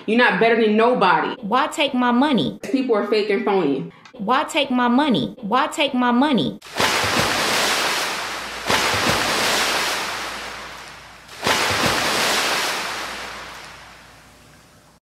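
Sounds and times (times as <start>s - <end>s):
ocean waves breaking: 6.6s - 15.0s.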